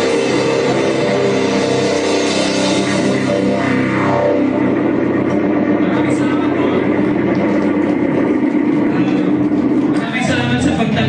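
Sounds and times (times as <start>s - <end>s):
distorted electric guitar and bass drone: 0.0s - 11.0s.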